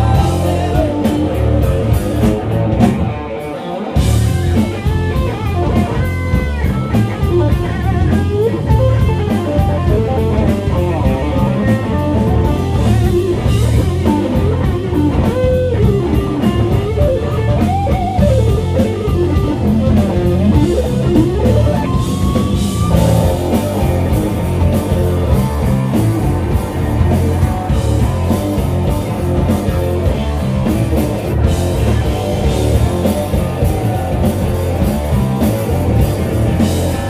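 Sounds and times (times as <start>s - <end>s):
bending electric guitar notes: 0.0s - 37.0s
rock band playing loudly: 0.0s - 37.0s.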